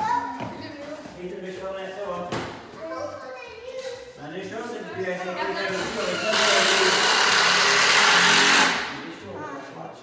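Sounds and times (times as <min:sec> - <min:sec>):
power tool running: 0:05.7 - 0:09.1.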